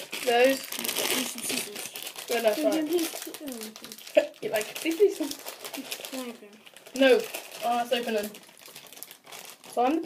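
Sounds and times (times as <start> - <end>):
boys talking: 0.0 - 8.4
candy wrapper crinkling: 0.0 - 10.0.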